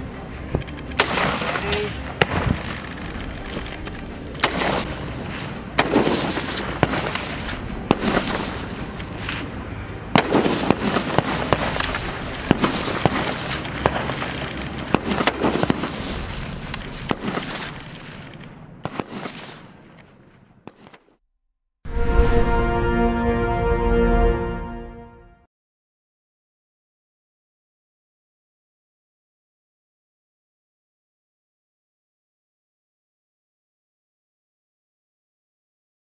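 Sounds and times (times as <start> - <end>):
rifle shots echoing: 0.9 - 2.8, 4.4 - 9.5, 10.1 - 21.0.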